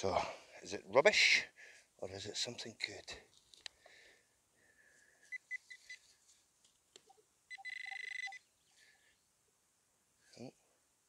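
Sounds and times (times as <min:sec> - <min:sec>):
metal detector beeps: 0:05.3 - 0:06.0, 0:07.5 - 0:08.4
metal detector buzzing tone: 0:07.5 - 0:08.4.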